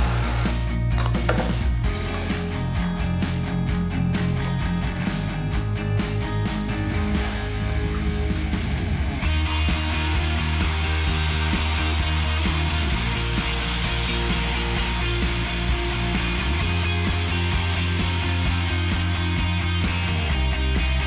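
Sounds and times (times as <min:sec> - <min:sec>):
rock music: 0:00.0 - 0:21.0.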